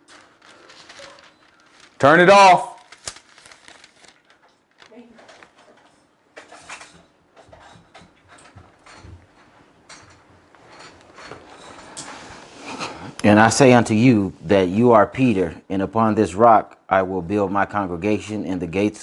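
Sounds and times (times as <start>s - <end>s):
rustles and handling clicks: 0.0s - 12.2s.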